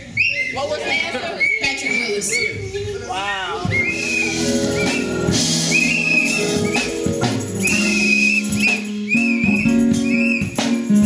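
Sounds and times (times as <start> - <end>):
gospel band playing: 0.0 - 11.0
high whistle-like melody: 3.6 - 11.0.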